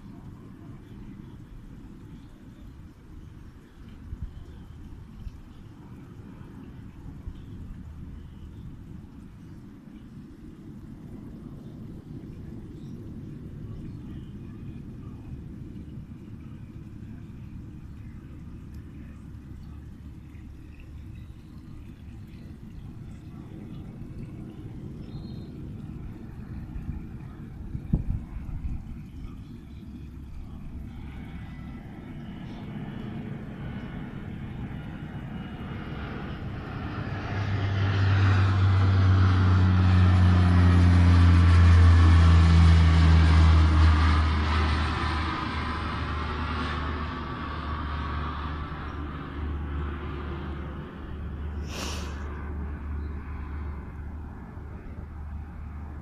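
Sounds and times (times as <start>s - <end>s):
propeller aircraft engine drone: 0.0s - 56.0s.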